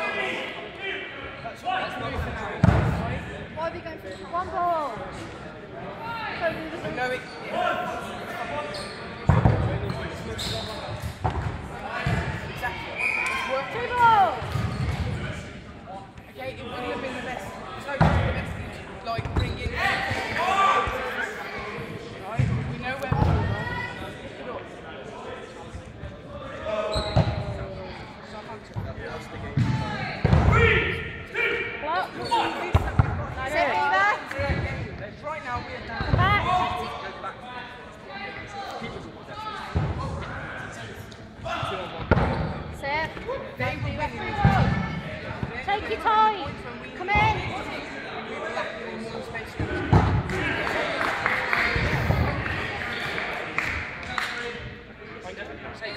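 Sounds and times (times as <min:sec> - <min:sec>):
players shouting in a hall: 0:12.0 - 0:14.6, 0:19.7 - 0:21.7.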